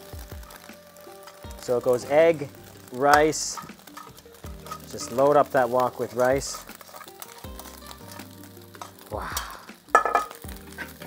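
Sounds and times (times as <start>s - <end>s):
food frying: 0.0s - 11.0s
spatula scraping a wok: 3.2s - 9.1s, 9.9s - 11.0s
spatula knocking on wok: 9.9s - 10.4s.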